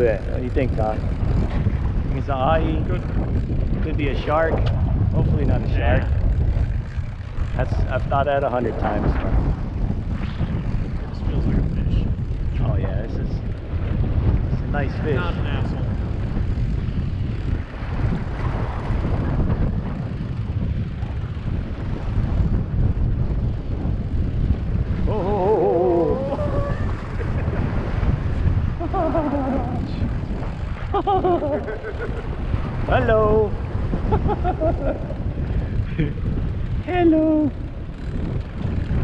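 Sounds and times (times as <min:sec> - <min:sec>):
boat engine running: 0:00.0 - 0:39.0
wind buffeting microphone: 0:00.0 - 0:39.0.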